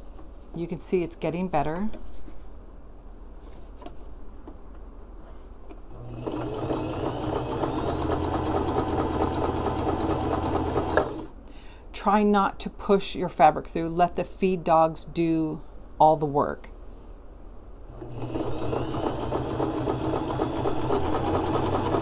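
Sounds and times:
sewing machine stitching: 0:06.0 - 0:11.3, 0:17.9 - 0:22.0.

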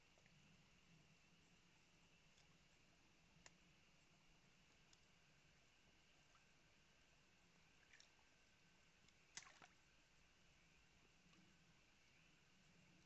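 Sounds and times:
faint steady hiss: 0:00.0 - 0:13.0.

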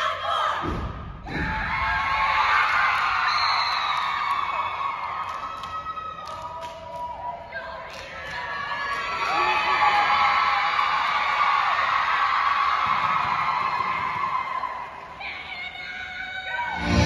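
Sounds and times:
audience cheering and screaming: 0:01.3 - 0:07.6, 0:08.4 - 0:17.0.

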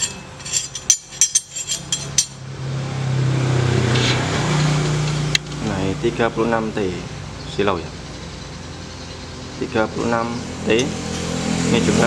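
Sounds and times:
metal sprockets clinking: 0:00.0 - 0:02.4
motor vehicle engine hum: 0:00.0 - 0:12.0.

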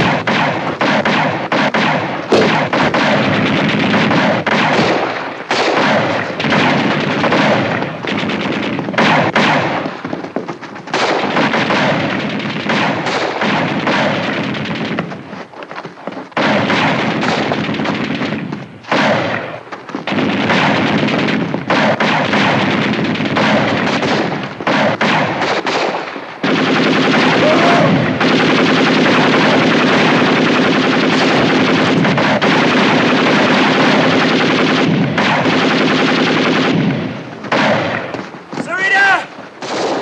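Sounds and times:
rifles and pistols firing: 0:00.0 - 0:40.0.

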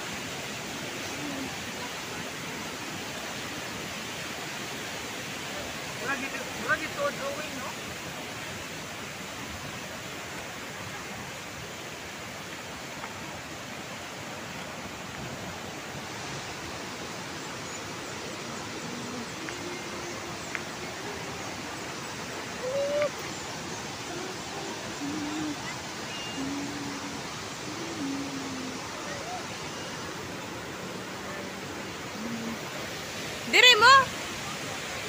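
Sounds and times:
river flowing: 0:00.0 - 0:35.0
waterfall rushing: 0:00.0 - 0:35.0.

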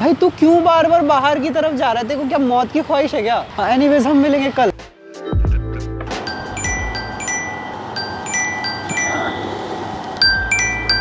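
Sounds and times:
steady low hum: 0:06.1 - 0:11.0
bell-like chime melody: 0:06.2 - 0:09.6, 0:10.2 - 0:11.0.

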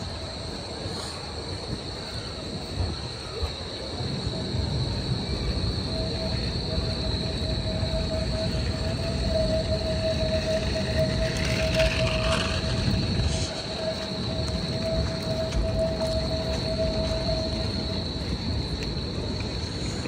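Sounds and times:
traffic rumble: 0:00.0 - 0:20.0
tram: 0:00.0 - 0:20.0
hiss: 0:00.7 - 0:03.6
steady whining tone: 0:02.0 - 0:20.0.

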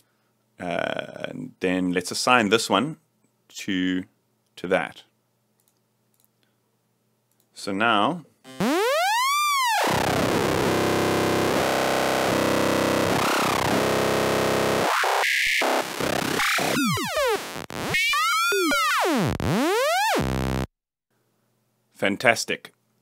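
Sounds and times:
synth lead sweeping in pitch: 0:08.5 - 0:20.7.

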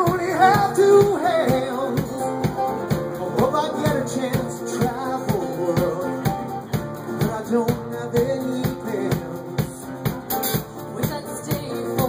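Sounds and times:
man and woman singing: 0:00.0 - 0:10.0
acoustic guitar: 0:00.0 - 0:12.0
electric bass: 0:00.0 - 0:12.0
piano: 0:00.0 - 0:12.0
steady drum beat: 0:00.0 - 0:12.0.

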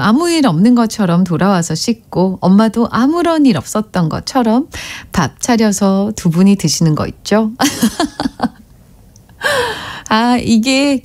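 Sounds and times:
woman laughing: 0:07.6 - 0:08.6
woman breathy ah: 0:09.4 - 0:10.1.

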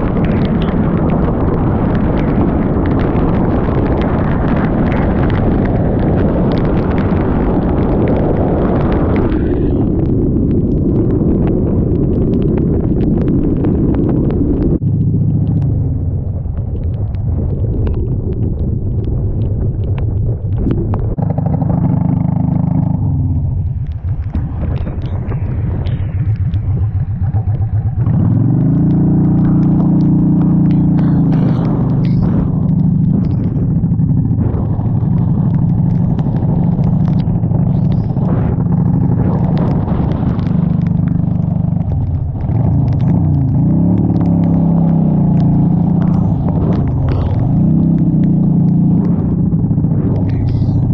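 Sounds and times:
motorcycle engine running: 0:00.0 - 0:50.9
raindrops ticking on camera: 0:00.0 - 0:50.9
wind rush: 0:00.0 - 0:50.9.

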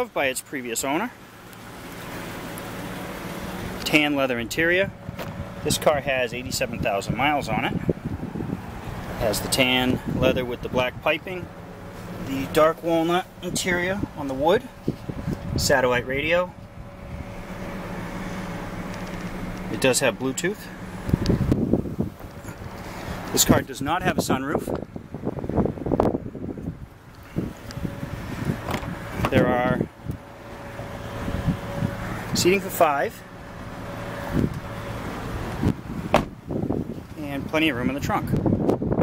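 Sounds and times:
car engine idling hum: 0:00.0 - 0:39.0
wind rumbling on microphone: 0:04.5 - 0:32.8, 0:33.4 - 0:39.0
car door shutting: 0:05.0 - 0:05.4, 0:17.2 - 0:19.7, 0:28.4 - 0:29.5, 0:34.3 - 0:36.5.

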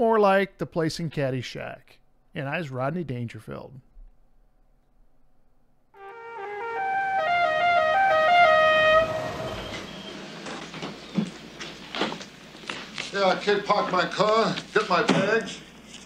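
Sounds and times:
melody of held notes: 0:06.0 - 0:10.1.

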